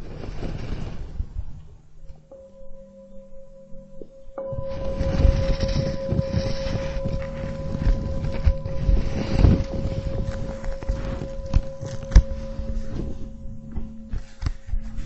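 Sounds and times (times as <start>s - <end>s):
singing bowl ringing: 2.2s - 15.0s
rustling handling noise: 4.5s - 15.0s.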